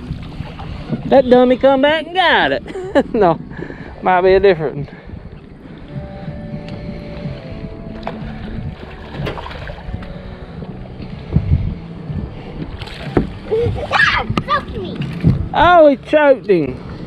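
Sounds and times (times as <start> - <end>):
knocks on boat: 12.8 - 15.6.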